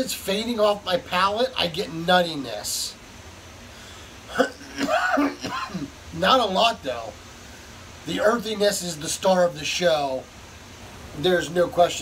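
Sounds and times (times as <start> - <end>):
man coughing: 4.3 - 6.0.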